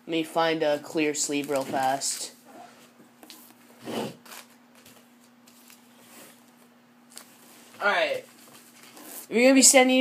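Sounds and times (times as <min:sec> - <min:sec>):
rustling of card sleeves: 0:04.2 - 0:09.3.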